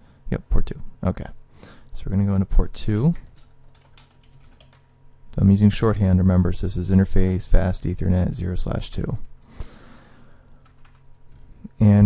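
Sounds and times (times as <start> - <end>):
computer keyboard typing: 3.0 - 5.0, 10.6 - 11.4.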